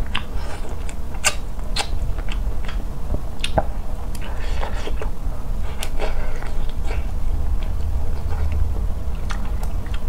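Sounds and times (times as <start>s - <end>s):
close chewing of food: 0.0s - 10.0s
steady low rumble: 0.0s - 10.0s.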